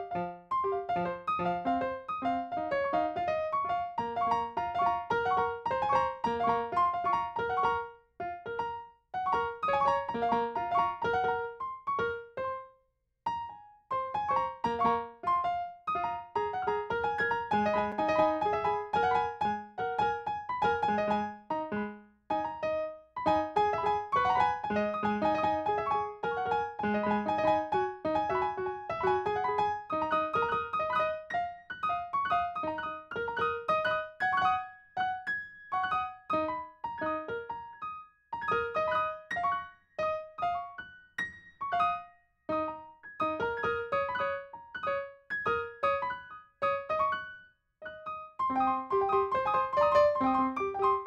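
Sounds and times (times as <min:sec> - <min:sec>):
solo piano playing: 0:00.0 - 0:51.0.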